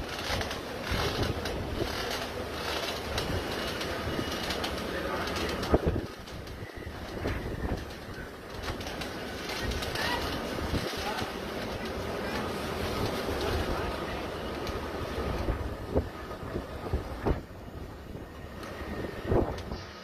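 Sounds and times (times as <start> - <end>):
driving rain: 0.0 - 19.8
gusting wind: 0.0 - 20.0.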